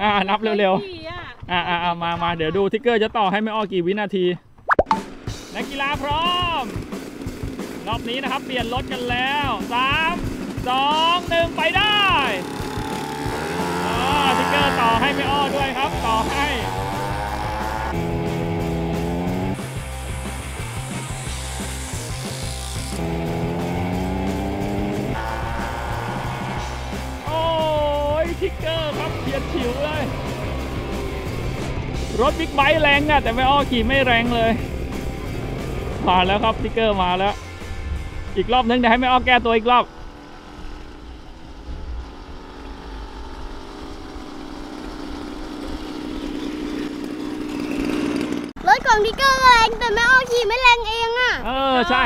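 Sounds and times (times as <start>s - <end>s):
background music: 4.7s - 40.0s
small motorbike engine buzzing: 5.3s - 36.4s, 39.4s - 50.6s.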